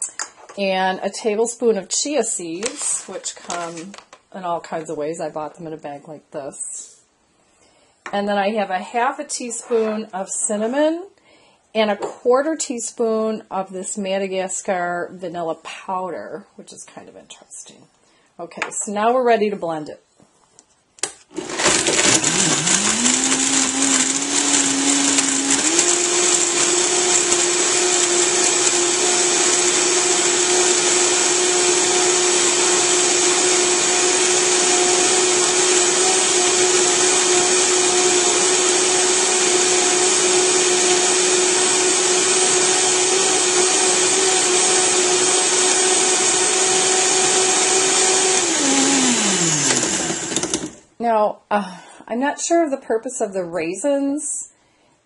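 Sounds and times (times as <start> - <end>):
blender motor running: 21.4 - 50.8.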